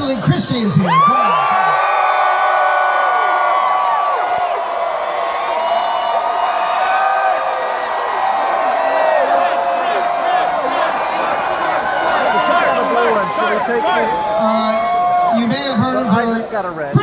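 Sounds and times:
large crowd cheering and screaming: 0.0 - 17.0.

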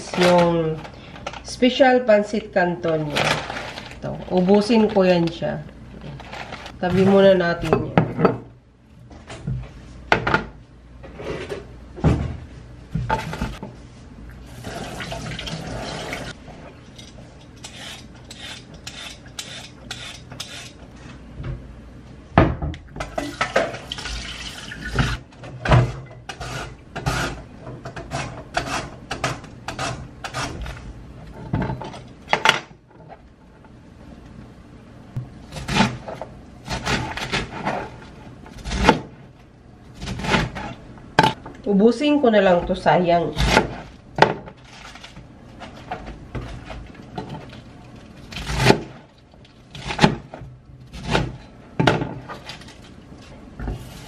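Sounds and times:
tap water running: 14.5 - 16.3, 23.2 - 25.2.

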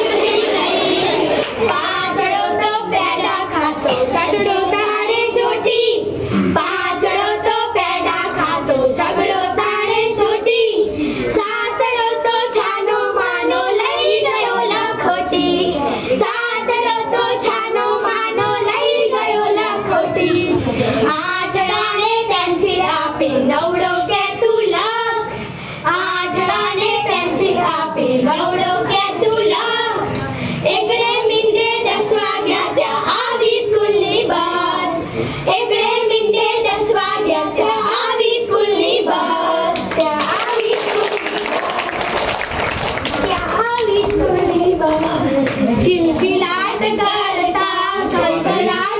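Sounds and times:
girls singing a children's song: 0.0 - 42.3, 43.1 - 48.9.

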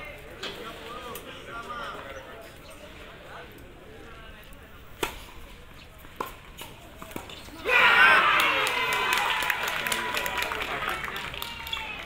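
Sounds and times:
loud shouting voices: 7.5 - 12.0.

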